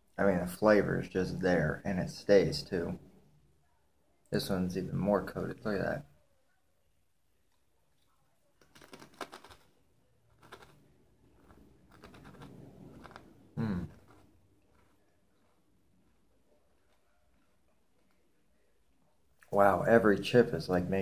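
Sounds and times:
chewing crunchy chips: 8.6s - 18.6s
person humming: 13.6s - 14.0s.

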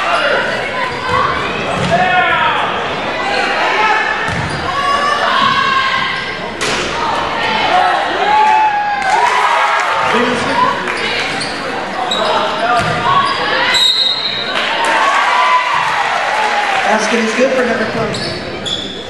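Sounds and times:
basketball bouncing: 4.3s - 4.6s, 12.7s - 13.2s
sneakers squeaking on hardwood: 4.3s - 4.8s, 10.9s - 14.5s, 18.0s - 19.0s
referee's whistle blowing: 13.3s - 14.5s.

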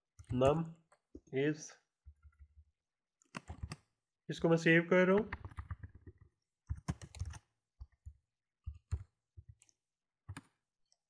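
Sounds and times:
computer keyboard clicks: 3.2s - 3.8s, 5.2s - 7.4s.

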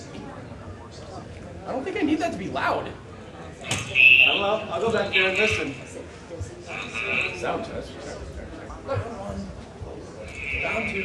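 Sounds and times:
faint voices: 0.0s - 11.0s
high-pitched whine: 10.3s - 11.0s.

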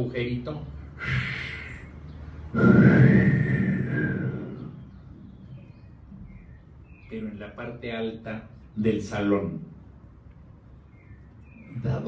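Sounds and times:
man whistling breathily: 2.6s - 4.8s.

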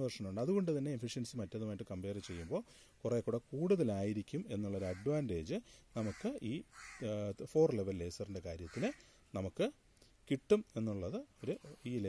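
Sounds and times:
man lecturing: 0.0s - 12.0s.

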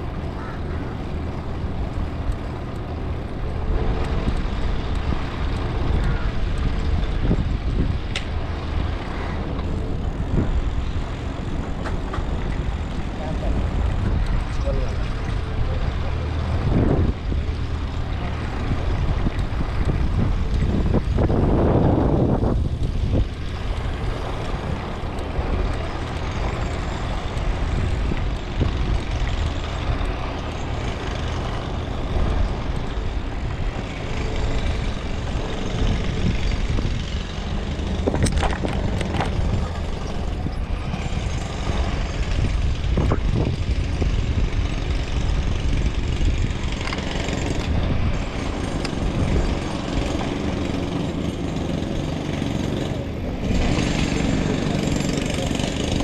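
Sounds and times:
wind on microphone: 0.0s - 56.0s.

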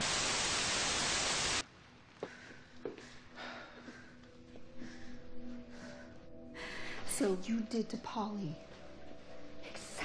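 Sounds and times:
tv static hiss: 0.0s - 1.6s.

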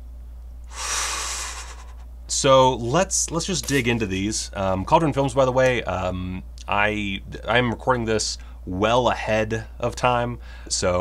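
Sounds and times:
low electrical hum: 0.0s - 11.0s
man sighing: 0.7s - 2.0s.

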